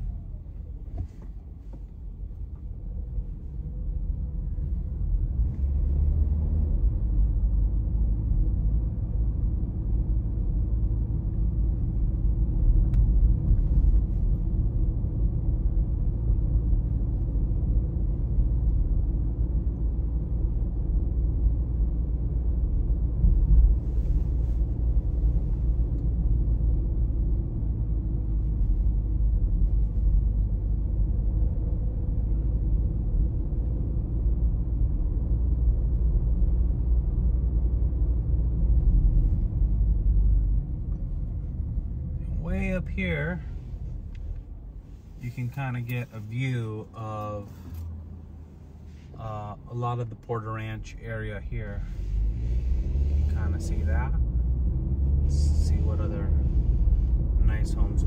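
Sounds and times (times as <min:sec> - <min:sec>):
car engine and tyre noise: 0:00.0 - 0:58.0.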